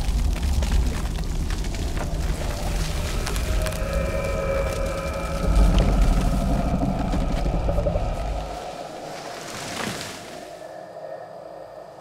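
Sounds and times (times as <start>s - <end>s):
deep loud rumble: 0.0s - 9.0s.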